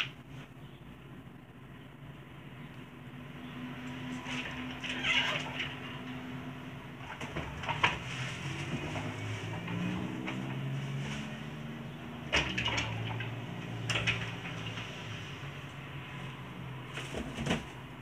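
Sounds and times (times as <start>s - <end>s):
knocks and rustles of handling: 7.0s - 15.3s, 16.1s - 18.0s.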